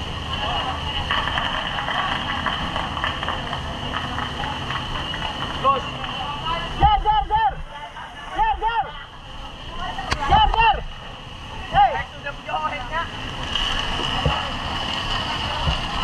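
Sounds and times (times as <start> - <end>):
men shouting: 6.6 - 9.1.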